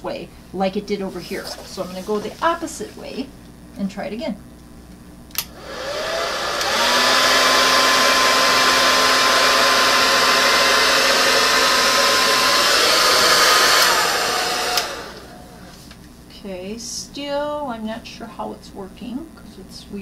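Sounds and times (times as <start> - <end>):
hair dryer blowing: 1.1 - 3.2, 5.4 - 16.0
hair dryer switch click: 5.3 - 5.6, 6.4 - 7.0, 12.5 - 15.2.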